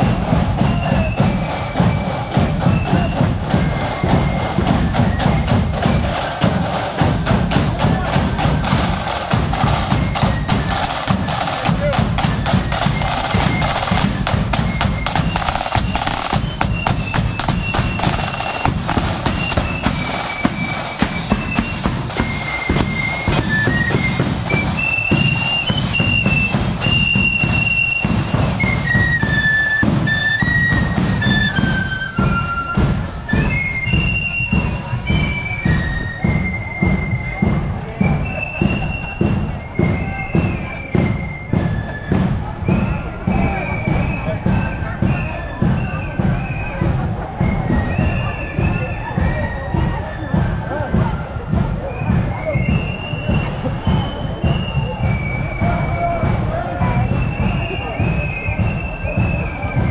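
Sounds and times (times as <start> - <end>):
flute melody: 0.0 - 59.9
side drums rattling: 0.0 - 59.9
bass drum beating: 2.3 - 26.8.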